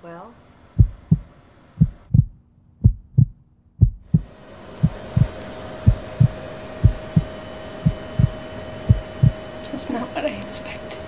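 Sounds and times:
heartbeat thumps: 0:00.8 - 0:09.4.

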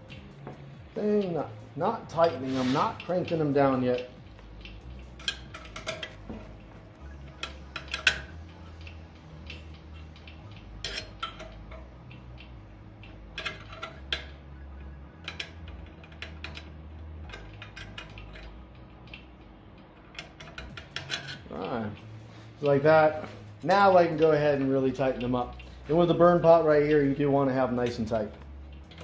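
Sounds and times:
wrench clinking on metal: 0:00.0 - 0:29.0.

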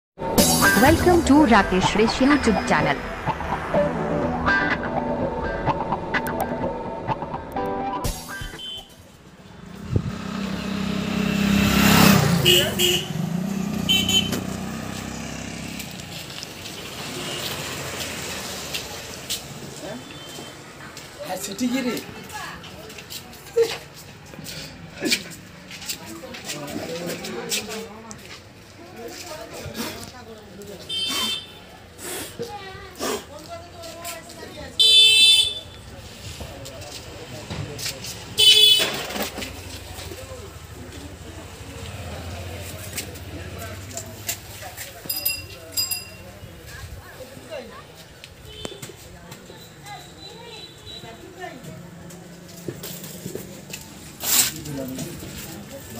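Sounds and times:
short high-pitched sounds: 0:00.2 - 0:06.6
street noise: 0:00.2 - 0:55.9
high-pitched horn-like honk: 0:08.4 - 0:09.0, 0:13.9 - 0:14.4.

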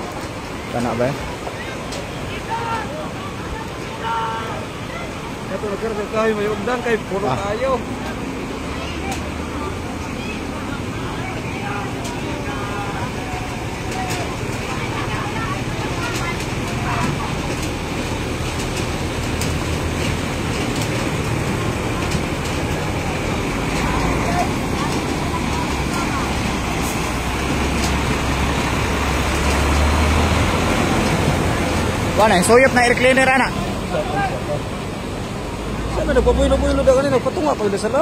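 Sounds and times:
churned water rushing: 0:00.0 - 0:38.0
truck diesel engine rumble: 0:00.0 - 0:38.0.

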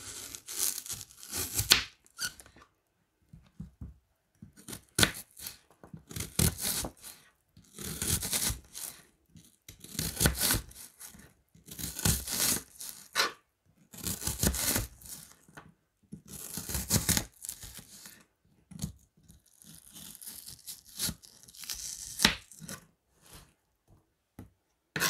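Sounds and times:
knife slicing through onion: 0:00.0 - 0:02.4, 0:04.6 - 0:09.0, 0:09.8 - 0:13.4, 0:14.0 - 0:15.3, 0:16.3 - 0:18.0.

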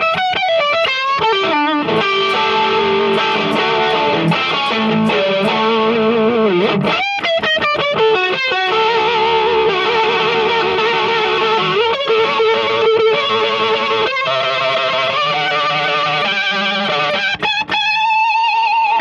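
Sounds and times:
electric guitar with vibrato: 0:00.0 - 0:19.0.

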